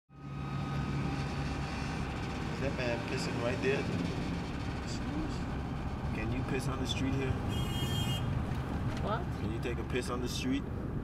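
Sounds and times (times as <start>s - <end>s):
motorcycle: 0.1s - 9.5s
street traffic hum: 0.1s - 11.0s.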